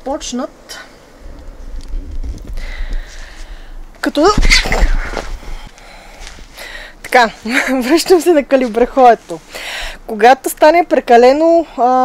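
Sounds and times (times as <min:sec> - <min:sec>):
person breathing: 0:02.4 - 0:04.0, 0:05.2 - 0:07.0, 0:09.5 - 0:10.1.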